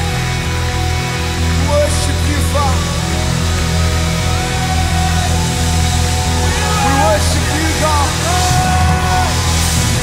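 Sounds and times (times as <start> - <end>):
live band playing: 0.0 - 10.0
low bass drone: 0.0 - 10.0.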